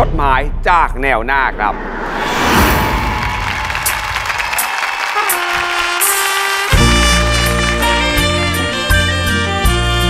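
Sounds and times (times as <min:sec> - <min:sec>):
strong bass: 0:00.0 - 0:04.7, 0:06.7 - 0:10.0
band playing: 0:03.8 - 0:10.0.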